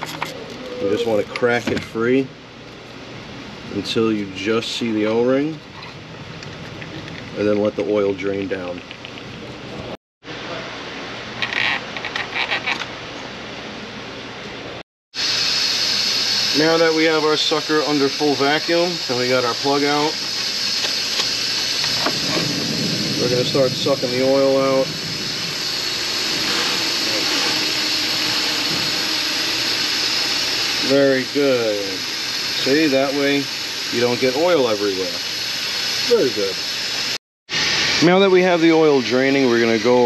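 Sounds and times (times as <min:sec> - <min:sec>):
steady shop hum: 0:00.0 - 0:40.0
scratchy creaking of filter cap: 0:11.4 - 0:12.9
oil extractor sucking steady hiss: 0:15.2 - 0:40.0.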